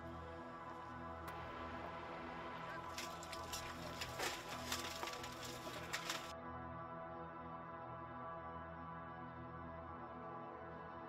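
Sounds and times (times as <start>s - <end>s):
sombre background music: 0.0s - 11.0s
rubble cracking and clattering: 2.7s - 6.3s.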